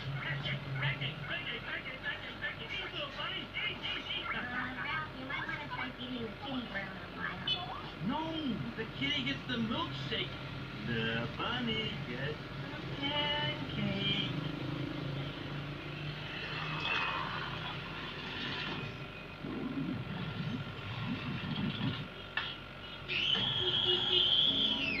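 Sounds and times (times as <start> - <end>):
television dialogue: 0.0 - 25.0.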